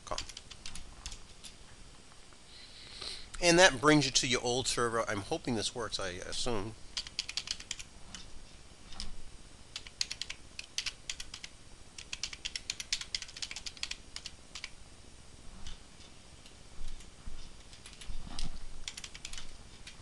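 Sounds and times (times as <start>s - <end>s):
typing on a computer keyboard: 0.0s - 1.2s, 7.0s - 8.2s, 9.7s - 14.8s, 16.9s - 20.0s.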